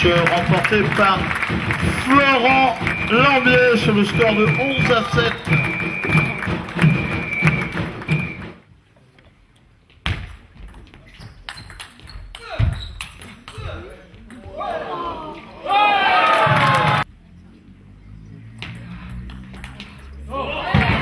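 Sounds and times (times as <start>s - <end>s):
voices: 0.0s - 7.6s, 13.4s - 21.0s.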